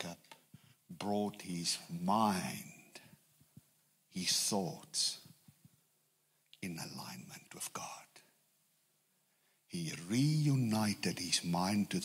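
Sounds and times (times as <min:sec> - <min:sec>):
man speaking into a microphone: 0:00.0 - 0:03.2, 0:04.1 - 0:05.4, 0:06.6 - 0:08.3, 0:09.7 - 0:12.0.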